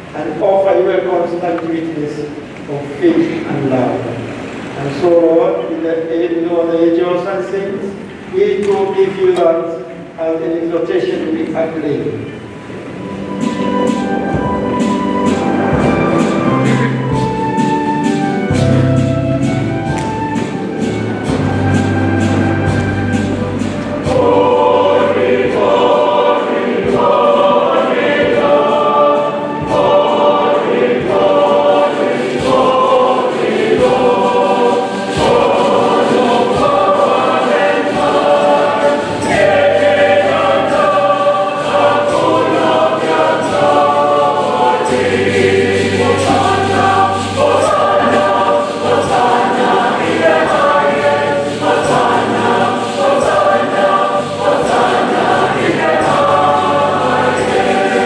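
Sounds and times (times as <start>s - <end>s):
choir singing a hymn: 0.0s - 58.0s.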